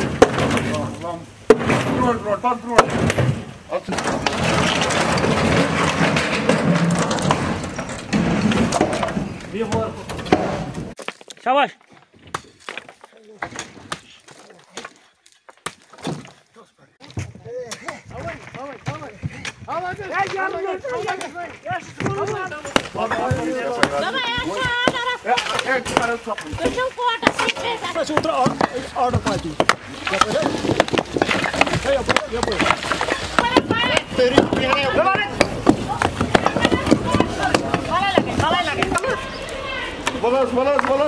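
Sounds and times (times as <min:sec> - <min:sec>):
wooden boards breaking apart: 0:00.0 - 0:11.4, 0:22.2 - 0:39.2
sharp knocks and clatters: 0:01.5 - 0:14.0, 0:18.2 - 0:39.0.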